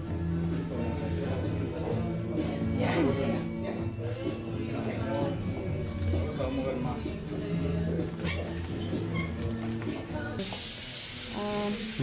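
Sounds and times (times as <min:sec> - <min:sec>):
dental air tool hissing: 0:10.4 - 0:12.0.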